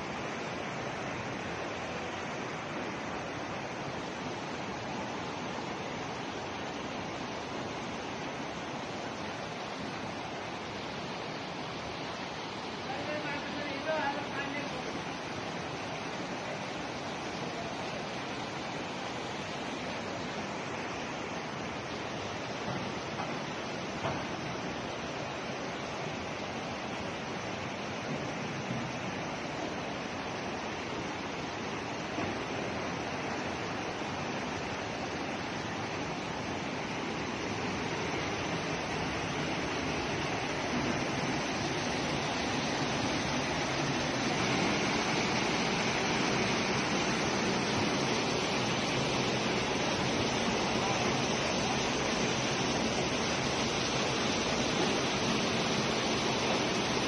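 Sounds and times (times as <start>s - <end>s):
floodwater rushing through street: 0.0s - 57.0s.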